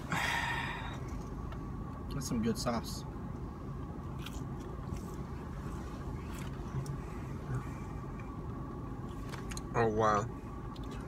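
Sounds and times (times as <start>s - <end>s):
low hum inside a car: 0.0s - 11.0s
person chewing food: 4.1s - 5.4s.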